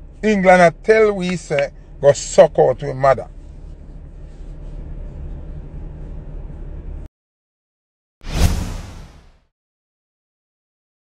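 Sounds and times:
whoosh transition: 0:08.2 - 0:09.4.

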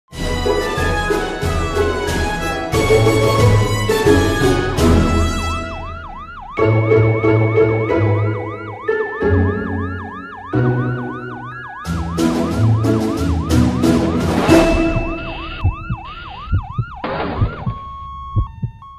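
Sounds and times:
ambulance siren wailing: 0:00.2 - 0:18.9
bright percussive strikes: 0:14.2 - 0:15.9
short low thumps: 0:14.5 - 0:18.8.

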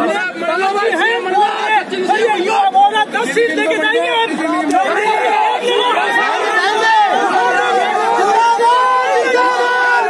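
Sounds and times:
crowd of men talking loudly: 0:00.0 - 0:10.0.

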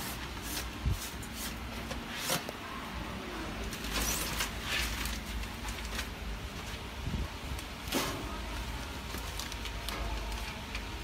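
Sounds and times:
plastic film rustling and crinkling: 0:03.6 - 0:11.0.

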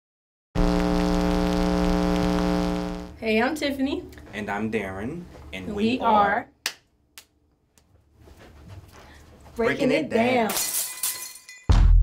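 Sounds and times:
television static hiss: 0:00.6 - 0:03.1
low electrical hum: 0:00.6 - 0:06.4.

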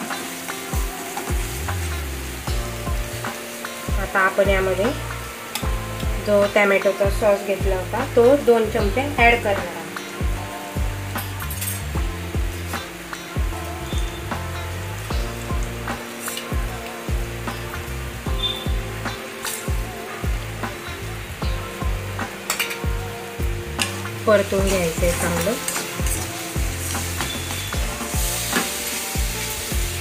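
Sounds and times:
background music: 0:00.0 - 0:30.0
masala sizzling in a pan: 0:00.0 - 0:30.0
metal spoon scraping a pan: 0:11.2 - 0:11.9, 0:16.1 - 0:16.5, 0:22.4 - 0:22.9, 0:24.7 - 0:29.6.

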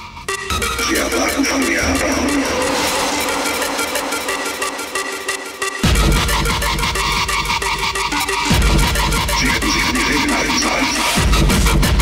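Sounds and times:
sustained synth tones: 0:00.0 - 0:11.2
hardtekk electronic dance music: 0:00.0 - 0:12.0
fast high-pitched rhythmic ticking: 0:00.2 - 0:12.0.

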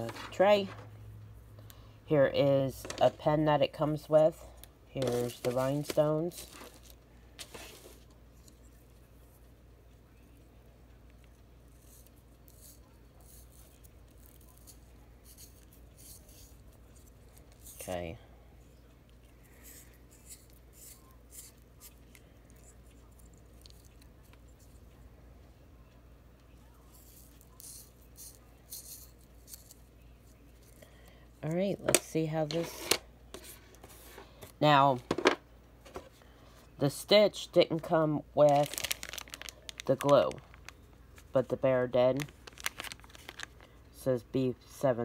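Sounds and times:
low steady hum: 0:00.0 - 0:45.0
plastic wrapping crinkling: 0:05.0 - 0:08.0, 0:38.4 - 0:41.4, 0:42.1 - 0:43.8.

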